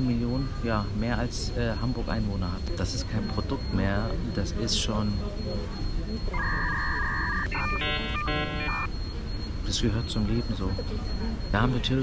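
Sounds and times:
short buzzy beeps: 0:06.2 - 0:08.9
two-note electronic tone: 0:06.4 - 0:08.9.

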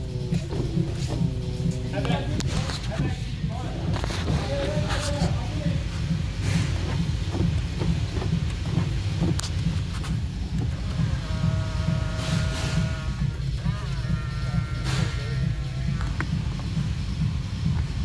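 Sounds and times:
steady low rumble: 0:00.0 - 0:18.0
electric mirror motor whining: 0:06.8 - 0:16.6.

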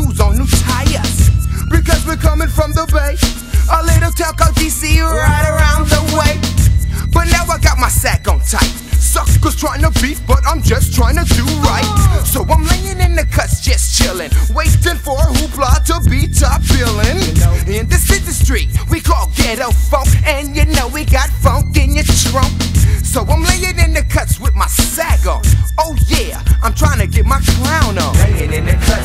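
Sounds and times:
drum beat: 0:00.0 - 0:29.0
heavy bassline: 0:00.0 - 0:29.0
rapping over a beat: 0:00.0 - 0:29.0.

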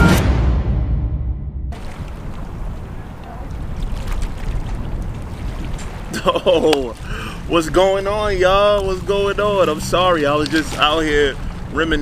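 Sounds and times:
wind noise on microphone: 0:01.7 - 0:12.0.

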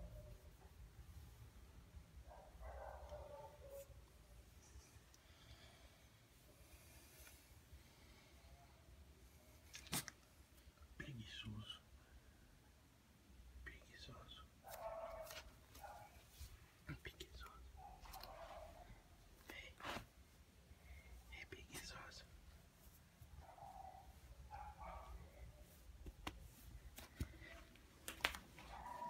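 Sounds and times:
faint whispering voice: 0:10.8 - 0:12.2, 0:13.5 - 0:20.1, 0:21.0 - 0:22.6.

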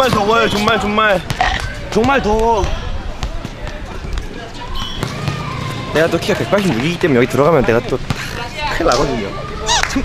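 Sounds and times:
distant voices: 0:00.0 - 0:10.0.

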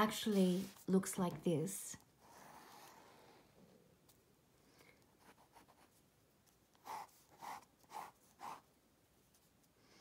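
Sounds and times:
pen strokes on paper: 0:00.1 - 0:01.2, 0:06.7 - 0:08.7.

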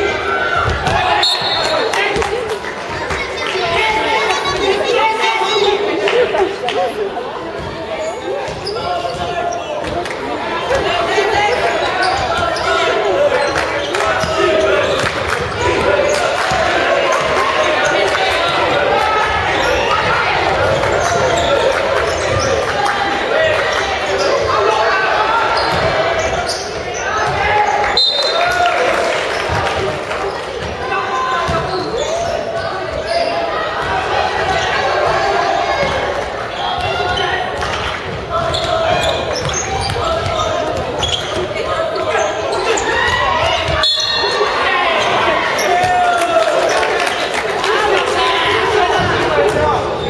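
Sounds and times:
voices calling and shouting: 0:00.0 - 0:50.0.

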